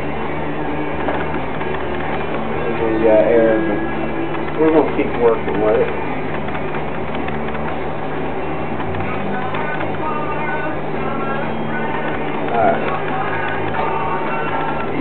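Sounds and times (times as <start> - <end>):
potter's wheel humming: 0.0 - 15.0.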